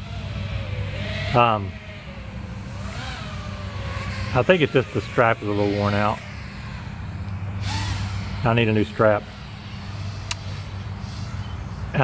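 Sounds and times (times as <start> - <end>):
quadcopter whoosh passing: 0.0 - 12.0
steady low hum: 0.0 - 12.0.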